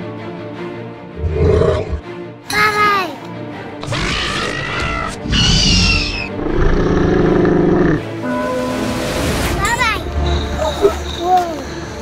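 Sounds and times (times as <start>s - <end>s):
background music: 0.0s - 12.0s
deep rough roar: 3.8s - 8.0s.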